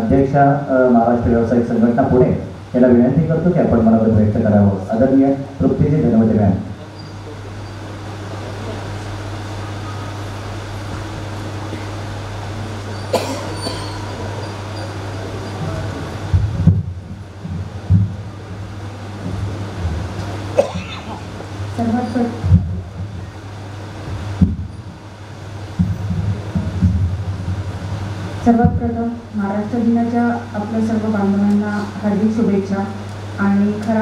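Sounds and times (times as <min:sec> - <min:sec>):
sound system hum: 0:00.0 - 0:34.0
microphone handling rumble: 0:14.0 - 0:29.2
dull thumps on microphone: 0:16.3 - 0:18.2, 0:22.4 - 0:23.2, 0:24.1 - 0:24.8, 0:25.8 - 0:28.0.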